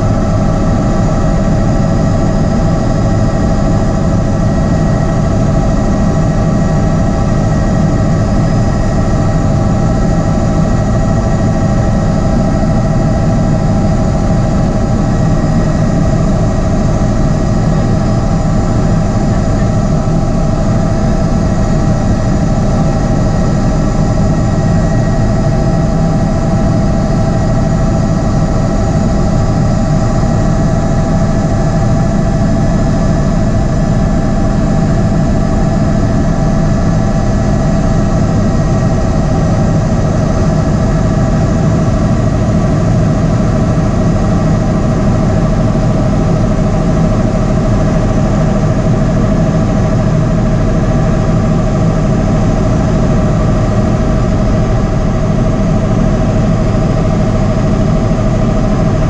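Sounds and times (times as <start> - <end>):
helicopter rotor beat: 0.0 - 59.0
helicopter turbine whine: 0.0 - 59.0.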